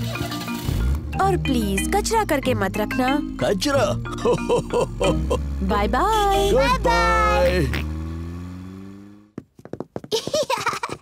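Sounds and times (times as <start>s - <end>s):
cartoon car engine humming: 0.0s - 11.0s.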